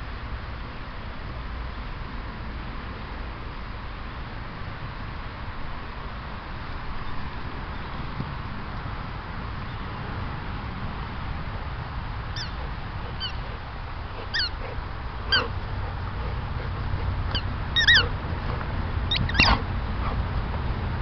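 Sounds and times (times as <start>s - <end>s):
steady low rumble: 0.0s - 21.0s
dog whining: 14.2s - 20.2s.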